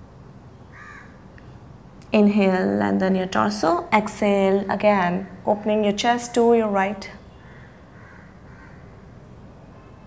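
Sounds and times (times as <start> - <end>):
distant crow cawing: 0.7 - 1.2, 7.3 - 9.2.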